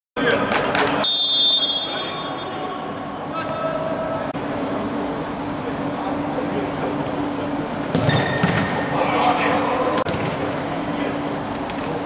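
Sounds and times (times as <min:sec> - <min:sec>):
murmur of voices echoing indoors: 0:00.2 - 0:12.0.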